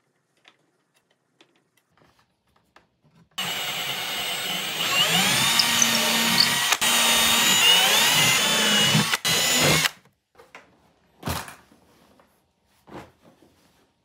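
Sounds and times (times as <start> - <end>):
cordless drill boring: 3.4 - 10.0.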